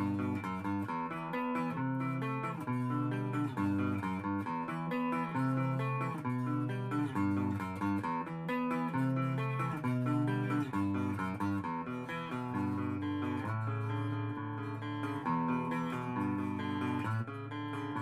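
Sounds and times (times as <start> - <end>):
electric guitar melody: 0.0 - 18.0.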